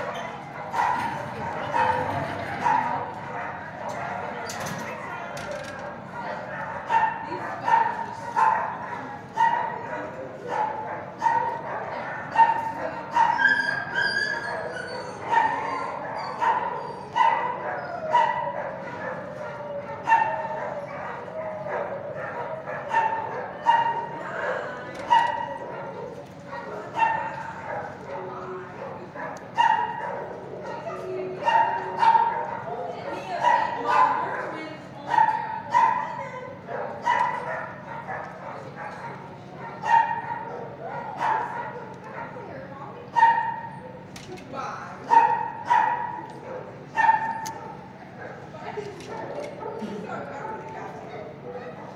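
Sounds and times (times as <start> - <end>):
dogs barking and yipping: 0.0 - 42.5, 45.0 - 48.5.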